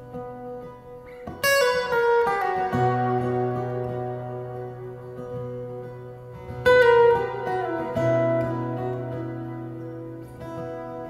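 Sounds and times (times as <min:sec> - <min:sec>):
acoustic guitar fingerpicking: 0:00.0 - 0:11.0.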